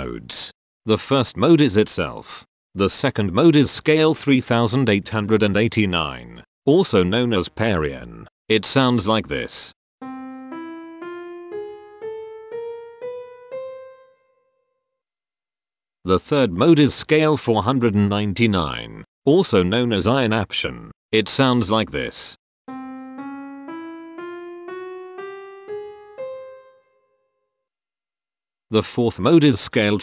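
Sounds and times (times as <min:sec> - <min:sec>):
ascending piano notes: 0:10.0 - 0:14.6, 0:22.7 - 0:27.3.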